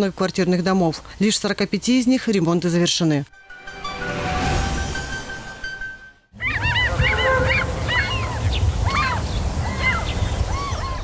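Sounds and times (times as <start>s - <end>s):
short music sting: 3.4s - 7.2s
flock of birds calling: 6.4s - 11.0s.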